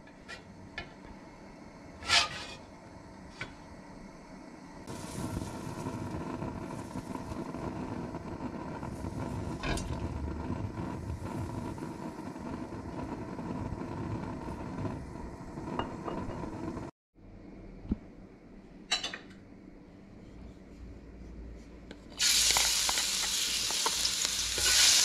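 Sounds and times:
stove rushing noise: 0.0 - 16.9, 21.7 - 25.0.

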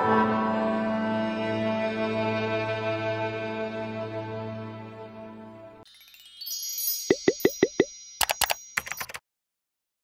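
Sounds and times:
high chime tone: 5.9 - 9.2
cartoon pops dropping in pitch: 7.1 - 7.9.

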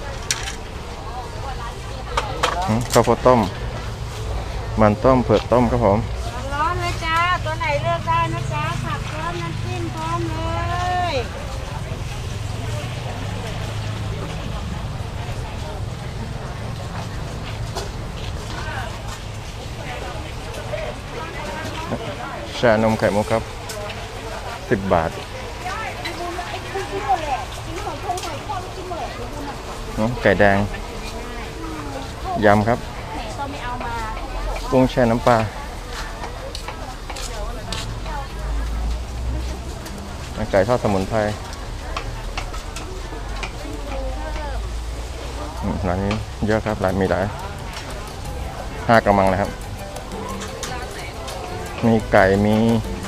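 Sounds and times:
faint chatter of people: 0.0 - 53.0
man speaking: 48.4 - 50.3, 51.3 - 53.0.

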